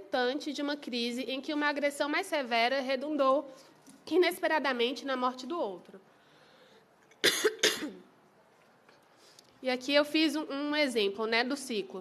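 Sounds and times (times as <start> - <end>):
person coughing: 7.2 - 8.0
people speaking: 9.6 - 12.0.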